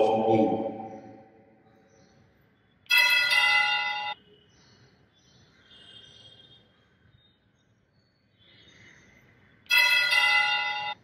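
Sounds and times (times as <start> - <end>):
altar bells ringing: 2.9 - 4.2, 9.7 - 11.0.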